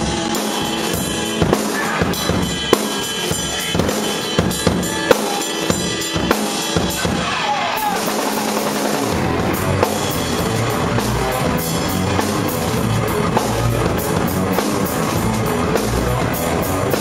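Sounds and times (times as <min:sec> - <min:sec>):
drum kit steady beat: 0:00.0 - 0:17.0
live rock band: 0:00.0 - 0:17.0.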